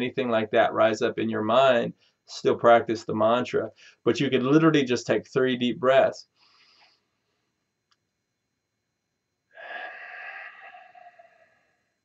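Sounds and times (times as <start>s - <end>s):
man breathing deeply: 6.4s - 7.1s, 9.6s - 12.0s.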